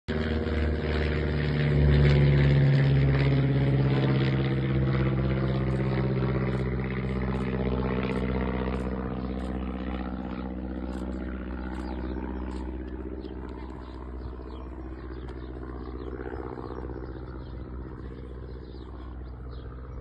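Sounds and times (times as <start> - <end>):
motor engine running: 0.1 - 20.0.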